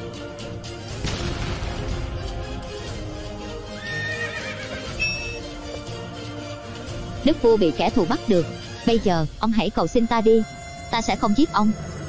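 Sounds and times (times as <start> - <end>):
background music: 0.0 - 12.0
horse whinnying: 3.8 - 5.5.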